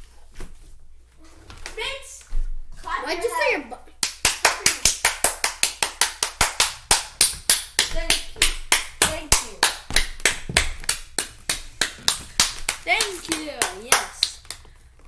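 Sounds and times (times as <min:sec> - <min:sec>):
child clapping hands: 0:04.0 - 0:14.7.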